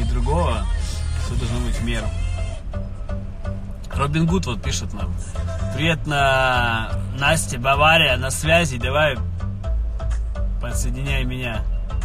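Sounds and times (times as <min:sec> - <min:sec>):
music from car radio: 0:00.0 - 0:12.0.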